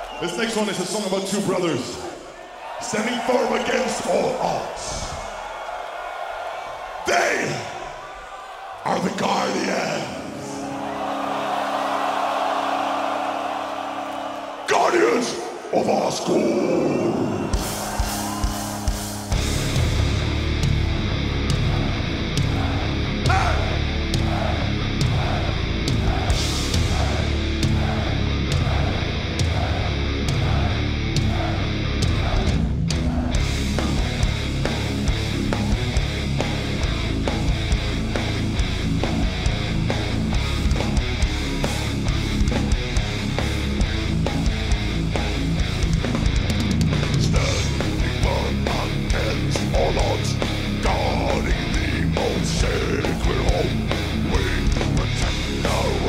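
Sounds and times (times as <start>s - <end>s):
distorted electric guitars: 17.4s - 56.0s
metal band playing live: 17.5s - 56.0s.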